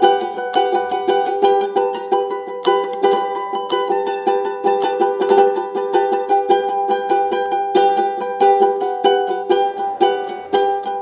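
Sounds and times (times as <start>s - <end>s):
ukulele strumming: 0.0s - 11.0s.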